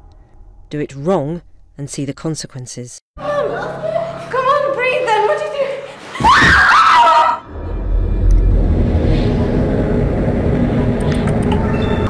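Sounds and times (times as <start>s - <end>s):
low droning film score: 0.0s - 1.8s, 3.2s - 12.0s
high rising scream: 6.2s - 12.0s.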